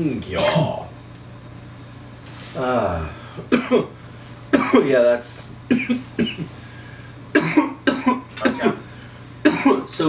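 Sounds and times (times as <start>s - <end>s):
man coughing harshly: 0.4s - 0.8s, 3.5s - 5.0s, 5.7s - 6.5s, 7.3s - 9.9s.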